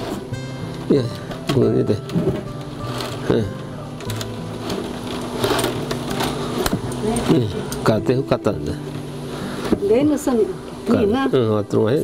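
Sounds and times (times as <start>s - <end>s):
soft background music: 0.0s - 12.0s
cane crackling as basket woven: 0.8s - 8.9s.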